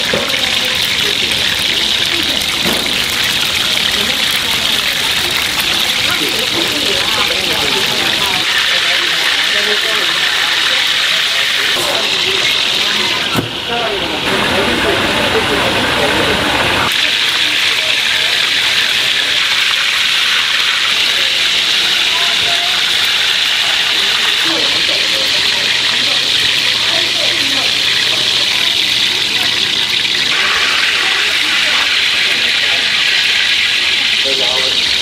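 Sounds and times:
faint voices: 0.0s - 35.0s
food deep-frying in oil: 0.0s - 35.0s.

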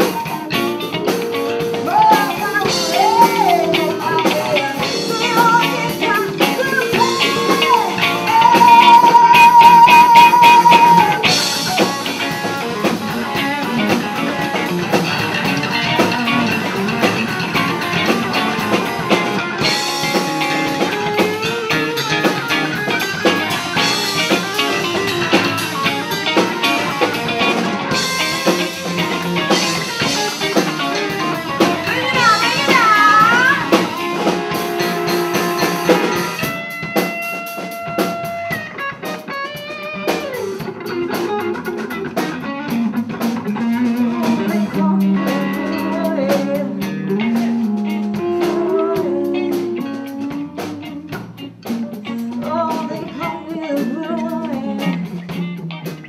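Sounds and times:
electric guitar lead with vibrato: 0.0s - 56.0s
live blues band playing: 0.0s - 56.0s.

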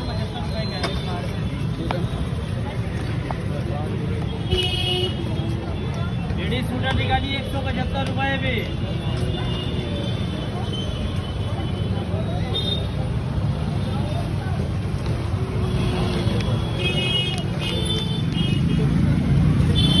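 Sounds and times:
street traffic rumble: 0.0s - 20.0s.

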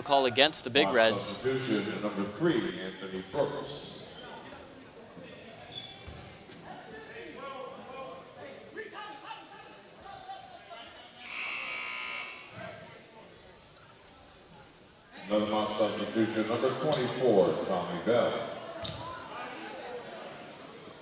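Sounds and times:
crowd chatter echoing: 0.0s - 21.0s
gym buzzer: 11.2s - 12.6s.

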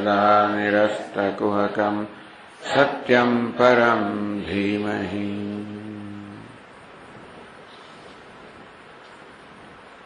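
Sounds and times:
man chanting: 0.0s - 6.6s.

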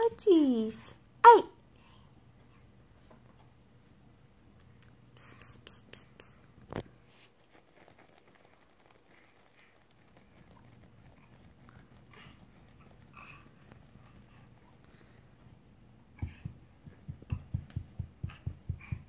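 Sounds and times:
person hissing tss: 5.2s - 6.4s.

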